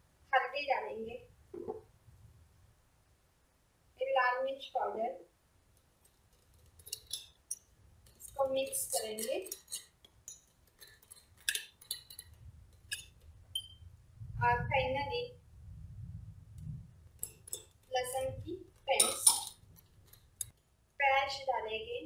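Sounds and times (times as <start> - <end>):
spoon clinking glass bowl: 6.4 - 13.9, 17.2 - 20.5.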